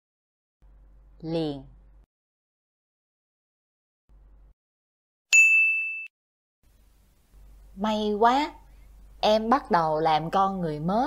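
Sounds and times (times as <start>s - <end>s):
bell-like ding: 5.3s - 6.1s.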